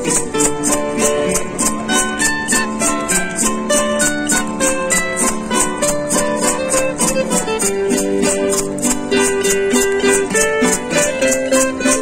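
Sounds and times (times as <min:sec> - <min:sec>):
acoustic guitars playing: 0:00.0 - 0:12.0
high shaking beat: 0:00.0 - 0:12.0.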